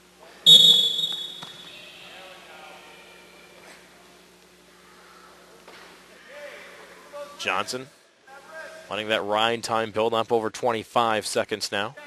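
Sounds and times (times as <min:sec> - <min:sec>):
loud high whistle: 0:00.4 - 0:02.1.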